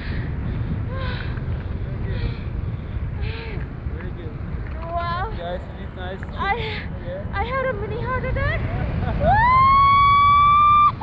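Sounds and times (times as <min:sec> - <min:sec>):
wind noise on microphone: 0:00.0 - 0:11.0
woman screaming with delight: 0:09.2 - 0:11.0.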